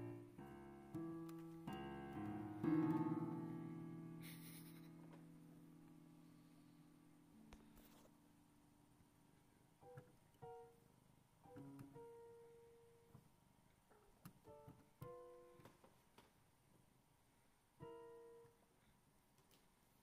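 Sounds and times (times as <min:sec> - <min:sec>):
electronic keyboard notes: 0:00.0 - 0:05.9.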